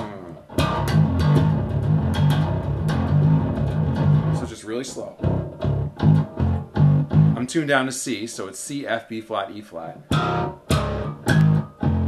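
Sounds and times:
electric bass plucked riff: 0.0s - 7.5s, 10.0s - 12.0s.

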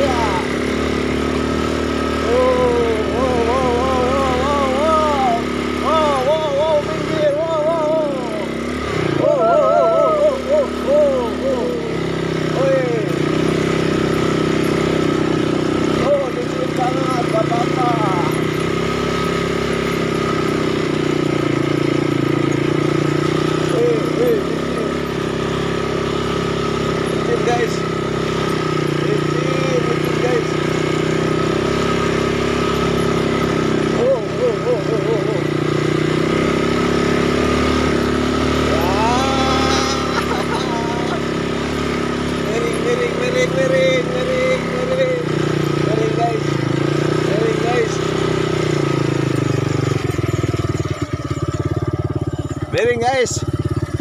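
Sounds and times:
atv engine running: 0.0s - 54.0s
short voice sounds: 38.7s - 41.2s.

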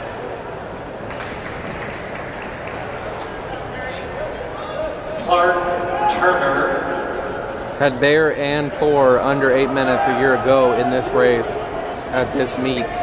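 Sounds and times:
crowd murmur: 0.0s - 13.0s.

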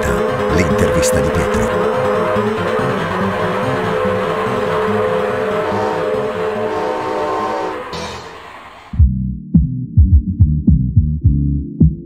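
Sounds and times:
intro jingle music: 0.0s - 5.5s.

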